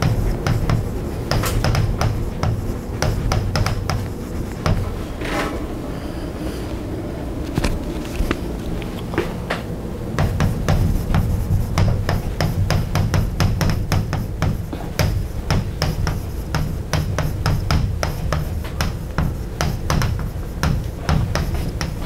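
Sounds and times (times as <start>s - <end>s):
chalk tapping on blackboard: 0.0s - 5.0s, 10.2s - 22.0s
steady low rumble: 0.0s - 15.5s.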